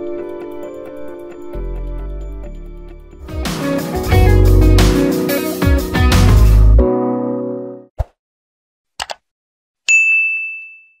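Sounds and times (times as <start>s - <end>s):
double mouse click: 9.0s - 9.2s
notification bell ding: 9.9s - 11.0s.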